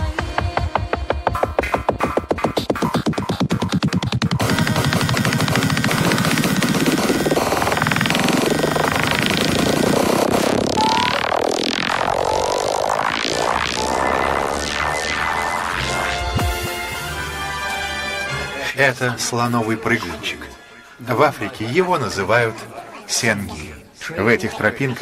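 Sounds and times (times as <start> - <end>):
electronic dance beat: 0.0 - 17.7
buzzing synth texture: 4.2 - 18.3
synth sweeps gliding: 4.6 - 18.2.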